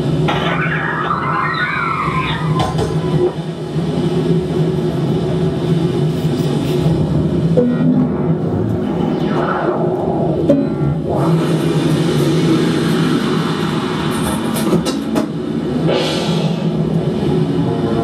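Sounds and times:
electronic music low drone: 0.0s - 14.6s, 15.3s - 18.0s
noise swells: 0.0s - 18.0s.

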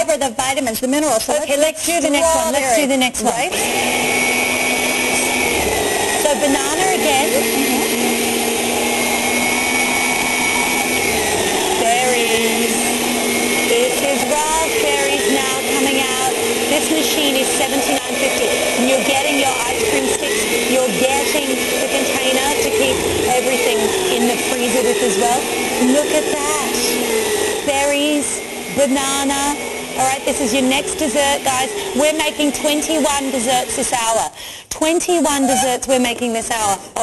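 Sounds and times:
food maker motor running: 1.4s - 34.4s.

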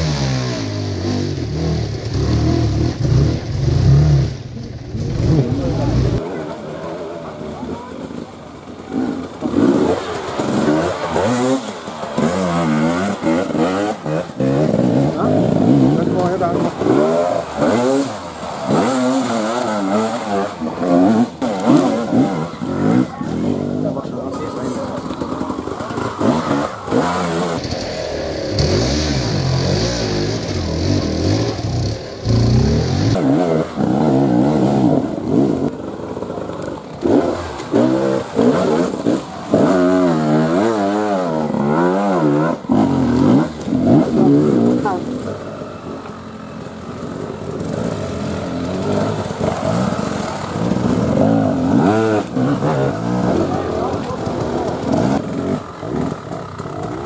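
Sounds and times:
motorcycle engines revving hard: 0.0s - 57.0s.

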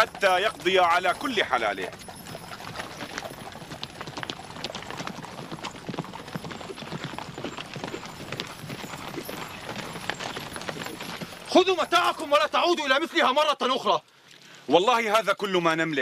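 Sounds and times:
horse hoofbeats on dry ground: 0.0s - 13.3s.

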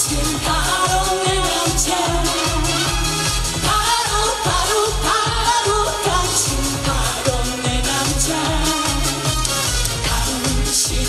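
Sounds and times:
woman singing with vibrato: 0.0s - 3.0s, 3.6s - 9.3s
backing music with bass beat: 0.0s - 11.0s.

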